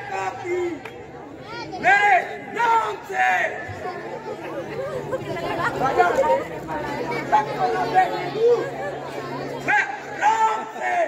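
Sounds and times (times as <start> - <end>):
many voices talking: 0.0 - 11.0.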